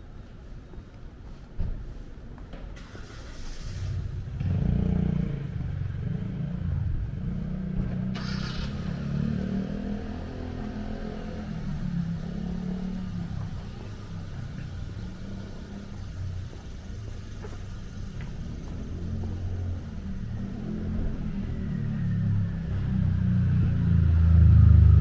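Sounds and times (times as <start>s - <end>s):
vehicle engine rumbling: 1.8s - 25.0s.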